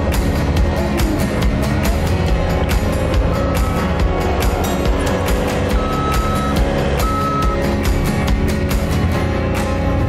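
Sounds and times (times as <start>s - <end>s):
background music with steady beat: 0.0s - 10.0s
reversing alarm beeps: 3.3s - 3.9s, 5.7s - 7.6s.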